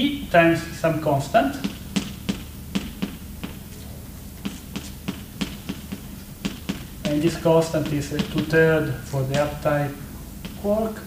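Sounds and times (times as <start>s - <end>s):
chalk tapping on blackboard: 4.4s - 10.7s.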